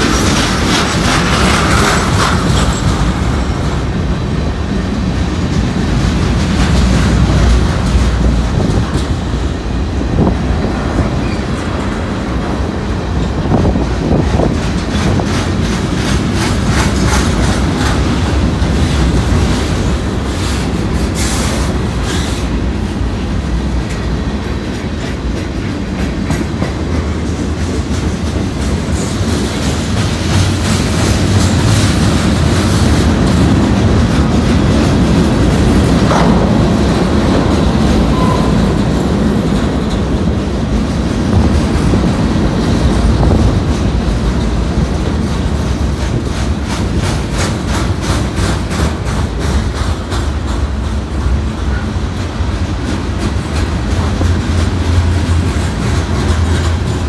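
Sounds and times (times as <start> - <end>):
clickety-clack over rail joints: 0.0 - 57.0
train wheels rumbling on rails: 0.0 - 57.0.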